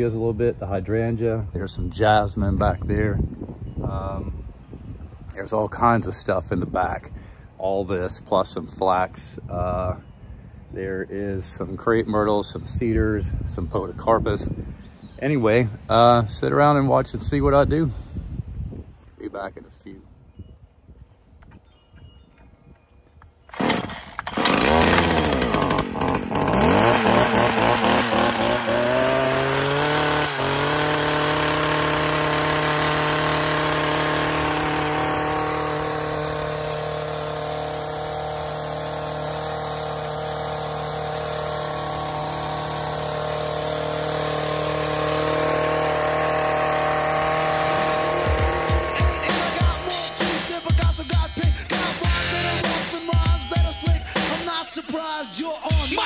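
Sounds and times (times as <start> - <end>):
hedge trimmer engine revving: 23.5 - 56.0.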